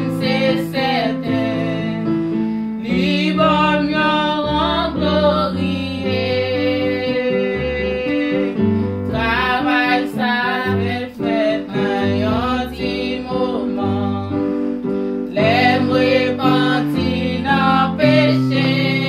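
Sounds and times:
women singing worship song: 0.0 - 19.0.

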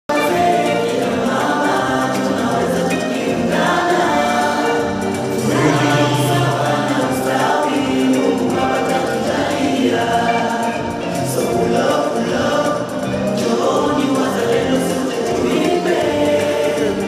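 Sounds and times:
choir singing: 0.1 - 17.0.

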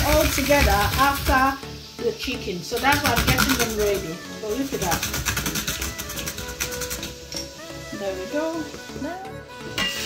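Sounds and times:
background music with held notes: 0.0 - 10.0
quick steady beat: 2.8 - 4.2.

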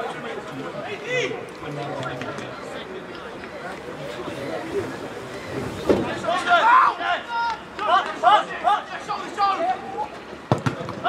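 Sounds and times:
footballers shouting: 3.7 - 11.0.

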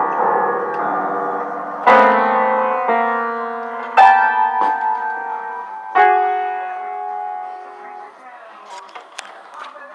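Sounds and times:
piano chord ringing: 0.0 - 8.2.

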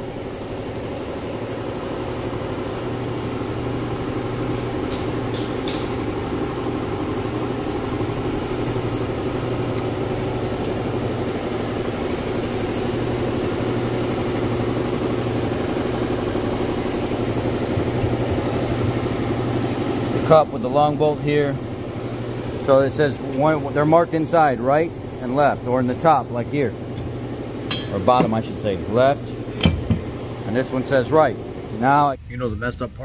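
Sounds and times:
engine idling: 0.0 - 32.1.

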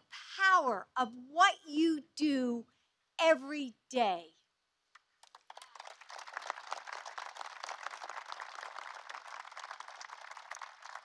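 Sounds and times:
audience applauding: 5.2 - 11.0.

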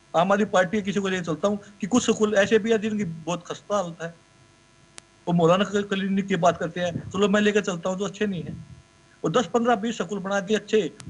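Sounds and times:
faint electrical hum: 0.0 - 11.0
man speaking: 0.2 - 4.2, 5.3 - 11.0
small click: 4.9 - 5.1.

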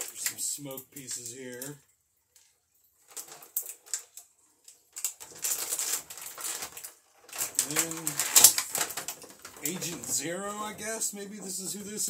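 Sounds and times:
plastic packaging crinkling: 2.4 - 12.0.

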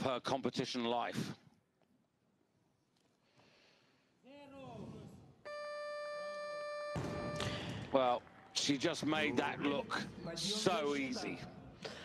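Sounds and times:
electronic buzzer tone: 5.5 - 7.6.

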